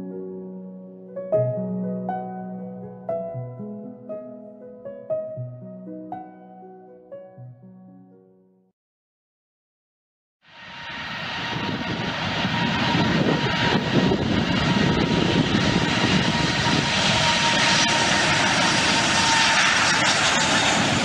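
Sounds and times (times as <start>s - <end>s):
airplane engine: 10.4s - 21.0s.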